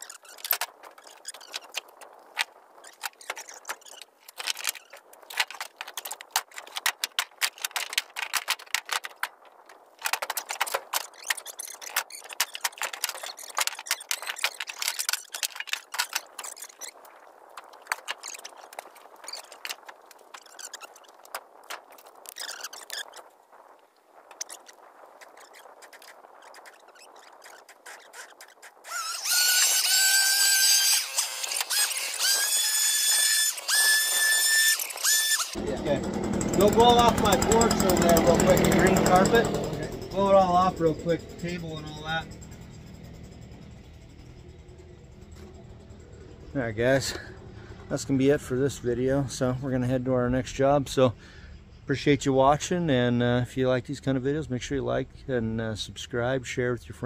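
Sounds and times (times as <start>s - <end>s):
firewood logs knocking and clattering: 0.0s - 23.0s
high whistling squeal: 26.4s - 48.2s
logs scraping on metal bed: 27.1s - 45.7s.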